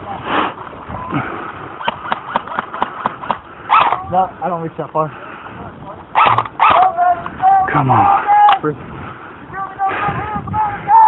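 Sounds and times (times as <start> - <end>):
airsoft rifle burst: 6.2 - 6.8.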